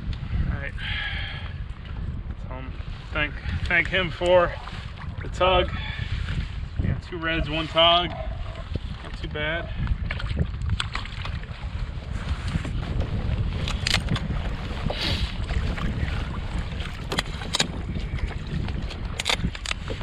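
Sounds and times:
wind rumbling on microphone: 0.0 - 20.0.

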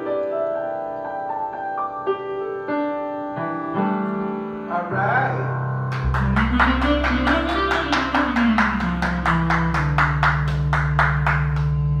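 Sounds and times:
electronic keyboard music: 0.0 - 12.0.

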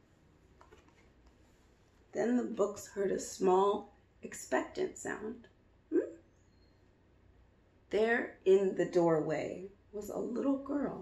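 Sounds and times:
book page turning: 0.6 - 1.4.

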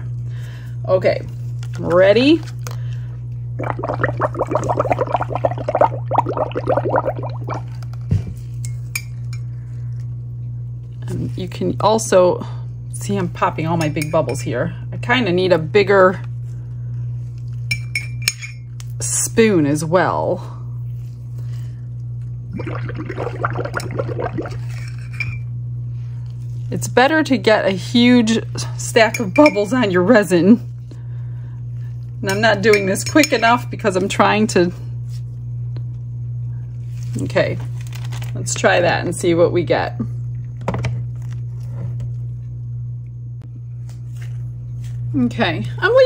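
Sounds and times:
steady low hum: 0.0 - 46.0
bubbling and clinking in a mug: 3.6 - 7.8, 22.6 - 25.5.

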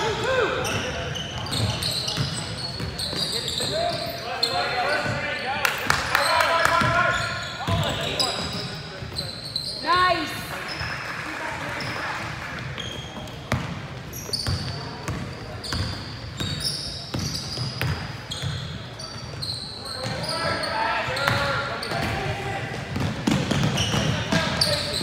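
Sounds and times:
sneakers squeaking on floor: 0.0 - 11.0, 11.7 - 25.0
voices echoing in gym: 0.0 - 25.0.

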